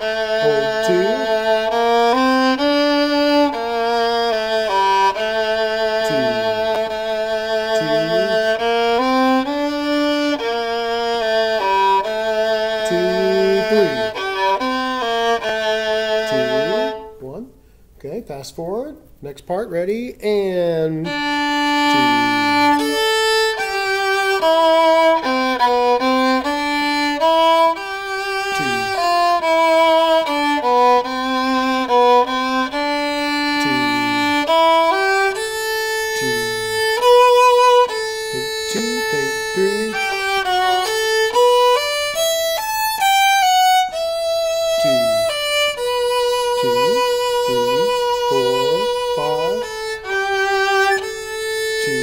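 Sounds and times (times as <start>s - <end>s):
violin playing bowed notes: 0.0s - 17.4s, 20.6s - 52.0s
faint man's voice: 0.4s - 1.4s, 6.0s - 6.9s, 7.8s - 8.5s, 12.8s - 14.2s, 16.3s - 21.2s, 21.9s - 23.1s, 28.6s - 29.1s, 33.6s - 34.4s, 36.2s - 37.0s, 38.3s - 40.2s, 44.8s - 45.4s, 46.4s - 51.1s, 51.8s - 52.0s.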